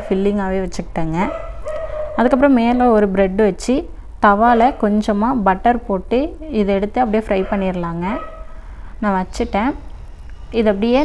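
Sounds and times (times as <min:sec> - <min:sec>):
woman talking: 0:00.0 - 0:01.4, 0:02.2 - 0:08.3, 0:09.0 - 0:09.9, 0:10.5 - 0:11.0.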